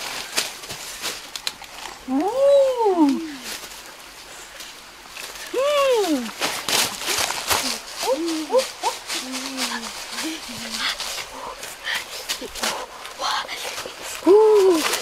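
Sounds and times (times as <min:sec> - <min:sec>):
crackles and rustles: 0:00.0 - 0:15.0.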